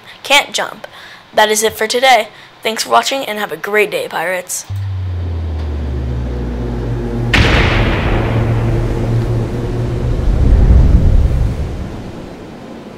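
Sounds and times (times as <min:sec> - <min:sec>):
heavy impact: 0:04.7 - 0:12.4
low held drone: 0:04.7 - 0:12.4
deep rumbling: 0:04.7 - 0:12.6.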